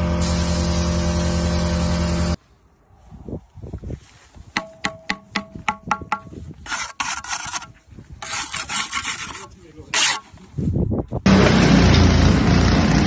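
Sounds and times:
trowel tapping a brick: 4.6 - 7.6
trowel scraping mortar: 6.5 - 10.6
mini dumper engine running: 11.3 - 13.0.

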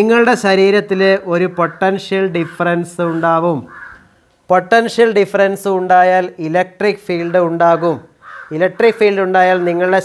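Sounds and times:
man lecturing: 0.0 - 3.8, 4.5 - 10.0
crow cawing: 1.4 - 4.3, 7.3 - 8.7.

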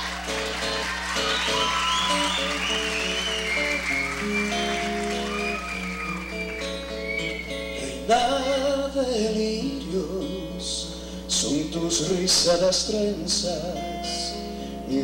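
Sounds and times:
acoustic guitar: 0.0 - 15.0.

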